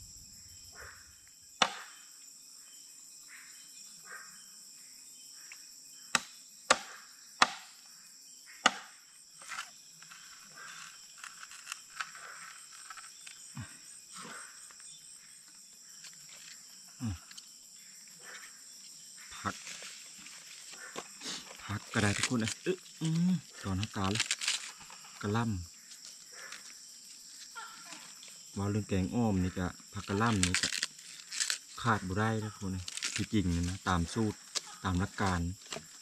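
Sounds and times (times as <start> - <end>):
night insects chirring: 0.0 - 36.0
machete chopping bamboo: 1.6 - 1.9, 6.1 - 7.8, 8.6 - 9.7
handling of bamboo and leaves: 9.4 - 13.6, 16.0 - 17.5, 18.8 - 36.0.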